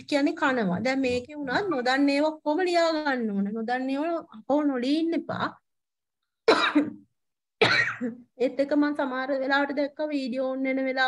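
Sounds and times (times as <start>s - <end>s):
person coughing: 6.5s - 7.0s, 7.6s - 8.2s.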